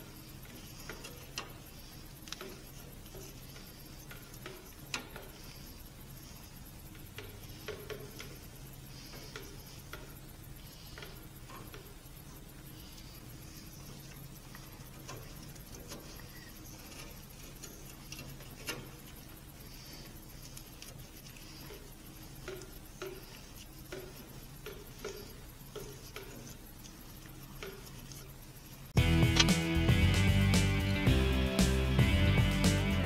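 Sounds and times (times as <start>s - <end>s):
faint clicks and taps of handling: 0.0s - 29.0s
steady low hum: 0.0s - 33.0s.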